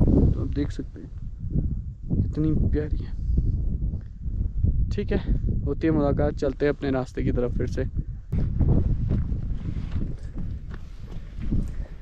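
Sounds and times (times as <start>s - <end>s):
footsteps on stony dirt trail: 8.3s - 12.0s.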